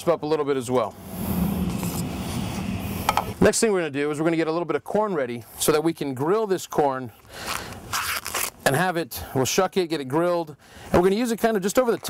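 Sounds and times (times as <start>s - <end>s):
steady low rumble: 0.4s - 3.7s.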